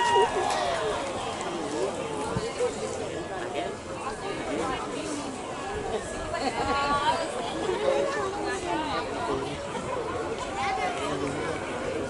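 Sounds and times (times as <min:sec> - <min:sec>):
spectators chattering: 0:00.0 - 0:12.0.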